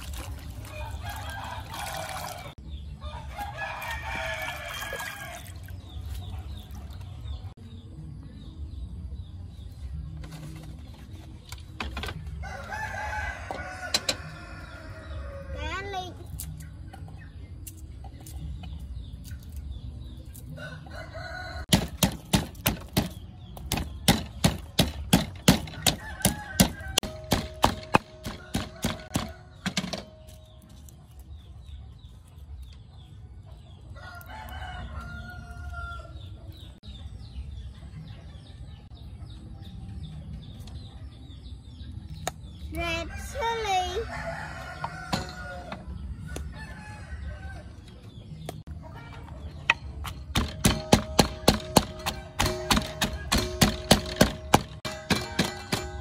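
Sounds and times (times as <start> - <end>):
rooster crowing: 12.4 - 15.6, 44.0 - 47.7
pestle knocking in clay mortar: 21.7 - 30.1, 49.7 - 56.0.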